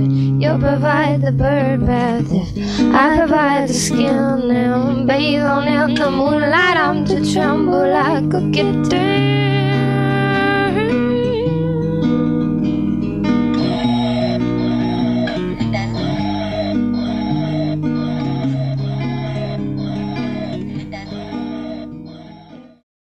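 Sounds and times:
soundtrack music with guitar: 0.0s - 22.8s.

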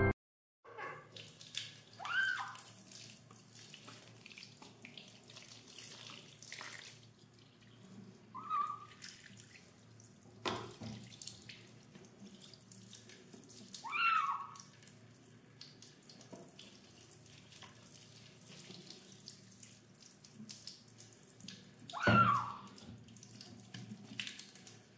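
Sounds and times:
kitten meowing: 2.0s - 2.6s, 8.4s - 8.9s, 13.8s - 14.6s, 21.9s - 22.7s
tap water running into sink: 9.0s - 13.9s, 14.6s - 24.9s.

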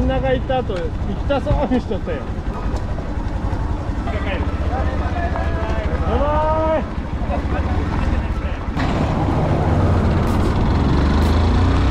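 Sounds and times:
faint voices talking: 0.0s - 8.8s
motorcycle engine idling: 0.0s - 8.8s.

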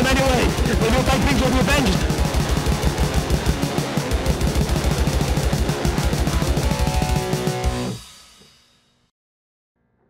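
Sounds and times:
distorted electric guitar: 0.0s - 8.2s
fast drum beats: 0.0s - 8.5s.

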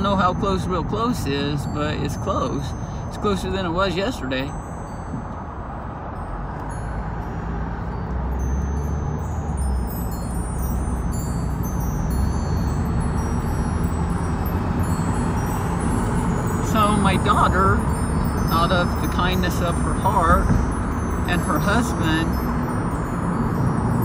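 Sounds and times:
engine and road rumble: 0.0s - 24.0s
faint high tinkling: 0.0s - 24.0s.

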